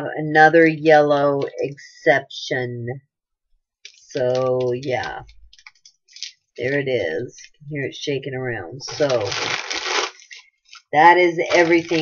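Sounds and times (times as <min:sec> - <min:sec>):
plastic wrapping crinkling: 0:03.8 - 0:06.5, 0:08.9 - 0:12.0.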